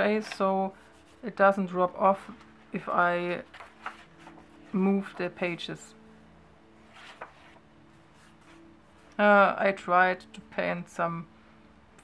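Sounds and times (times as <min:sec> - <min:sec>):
faint musical drone: 0:00.0 - 0:12.0
paper page turning: 0:02.2 - 0:05.2, 0:06.8 - 0:09.2.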